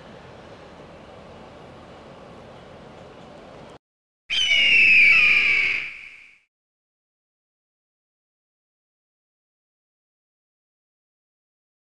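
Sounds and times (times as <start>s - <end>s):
eagle cry: 4.3s - 6.3s.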